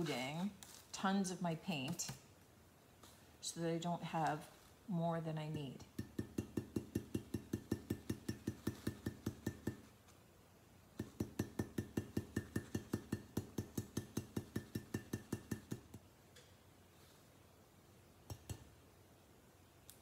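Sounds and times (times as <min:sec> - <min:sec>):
stencil brush tapping on glass jar: 0:05.9 - 0:09.9, 0:11.0 - 0:16.0.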